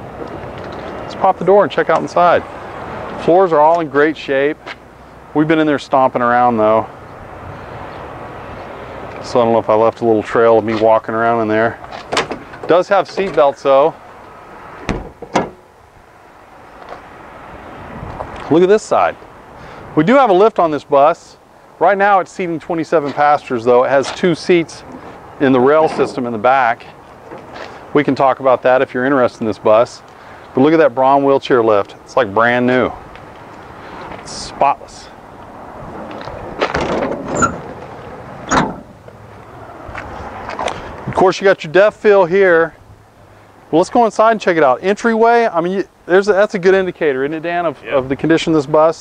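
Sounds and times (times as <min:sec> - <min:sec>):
faint outdoor background: 0:00.0 - 0:49.0
bus door shutting and latching: 0:11.8 - 0:13.6, 0:14.8 - 0:15.8, 0:25.6 - 0:26.5, 0:27.2 - 0:27.6, 0:36.1 - 0:39.2.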